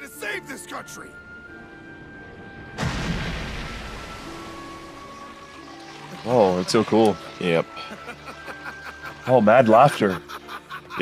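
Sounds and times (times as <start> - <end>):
music with held tones: 0.0 - 11.0
earth crumbling rumble: 2.7 - 5.0
loud crash: 2.8 - 4.1.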